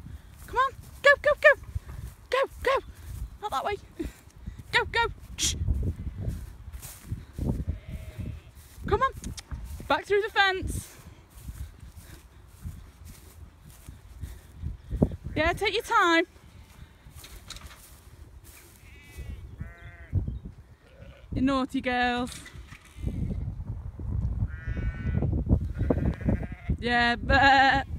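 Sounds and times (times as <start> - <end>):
footsteps through dry grass: 0.0 - 20.2, 24.0 - 26.7
faint sheep bleat: 7.7 - 8.8, 18.7 - 20.2, 20.8 - 21.4, 24.5 - 26.8.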